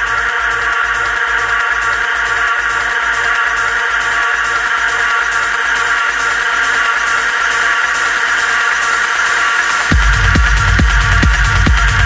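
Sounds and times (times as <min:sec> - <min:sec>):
pulsing low bass: 0:09.9 - 0:12.0.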